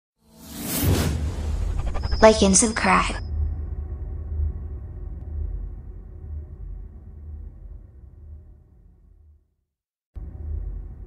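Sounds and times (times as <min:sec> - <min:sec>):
whoosh: 0:00.3 - 0:08.4
deep bass rumble: 0:03.2 - 0:09.5, 0:10.2 - 0:11.0.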